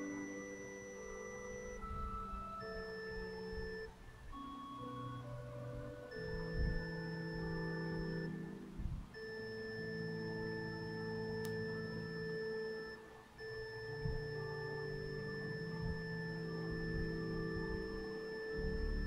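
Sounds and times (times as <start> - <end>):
sustained keyboard chords: 0.0 - 19.0.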